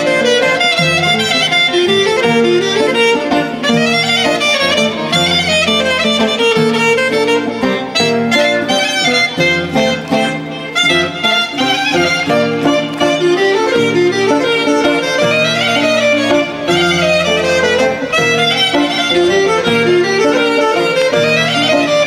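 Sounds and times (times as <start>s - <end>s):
clarinet melody: 0.0s - 22.0s
folk band music: 0.0s - 22.0s.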